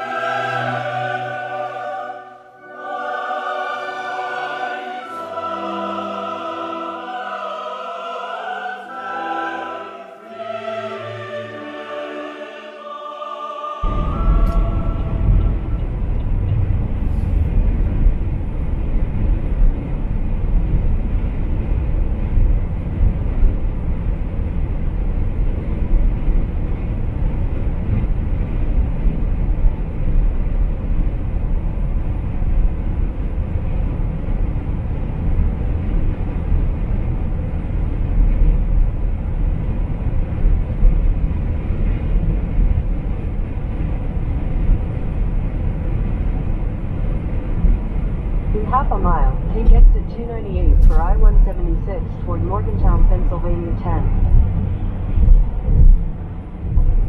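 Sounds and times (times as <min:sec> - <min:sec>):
road and tyre noise inside car: 0:13.8 - 0:57.0.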